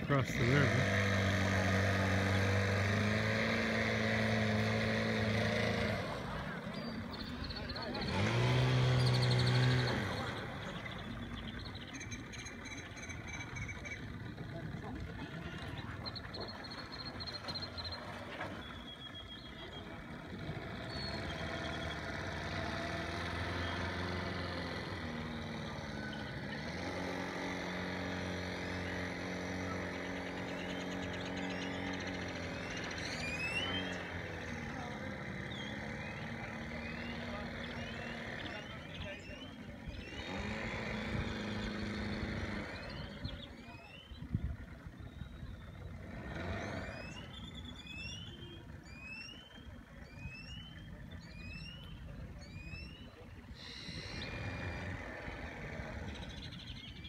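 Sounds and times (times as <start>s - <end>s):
outboard motor running: 0.0s - 57.0s.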